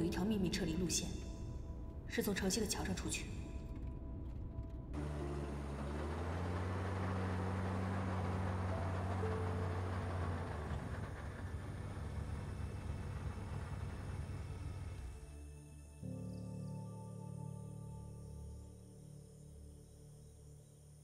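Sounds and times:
car engine rumbling: 2.8s - 15.2s.

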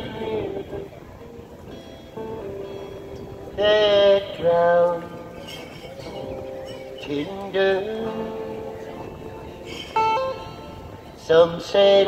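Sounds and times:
acoustic guitar played softly: 0.0s - 12.0s.

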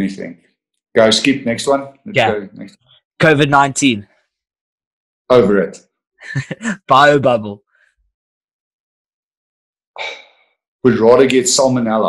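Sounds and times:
man speaking: 0.0s - 0.4s, 1.0s - 4.0s, 5.3s - 7.6s, 10.9s - 12.0s.

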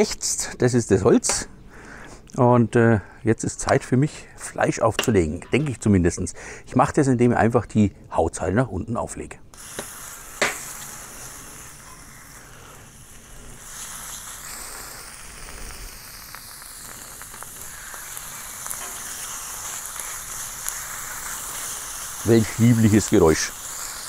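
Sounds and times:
chicken sizzling on hot plate: 9.6s - 24.0s.

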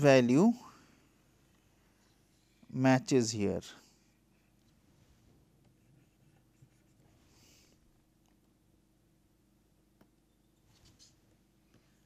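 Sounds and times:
stylus scratching and tapping on tablet: 5.6s - 7.2s.

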